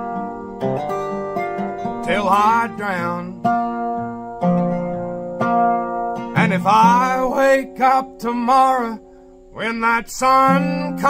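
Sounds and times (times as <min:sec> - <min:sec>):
resonator guitar chords ringing: 0:00.0 - 0:11.0.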